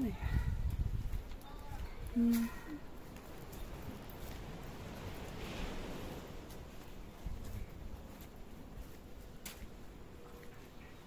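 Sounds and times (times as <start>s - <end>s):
footsteps on concrete: 6.4s - 10.7s.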